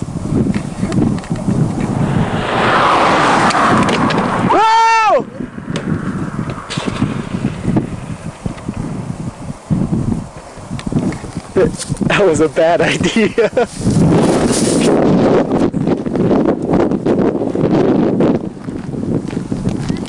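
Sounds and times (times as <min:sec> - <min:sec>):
wind buffeting microphone: 0:00.0 - 0:20.0
person yelling: 0:04.5 - 0:05.4.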